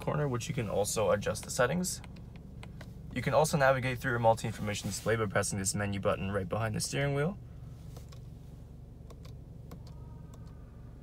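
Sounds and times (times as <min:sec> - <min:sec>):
car engine idling hum: 0:00.0 - 0:11.0.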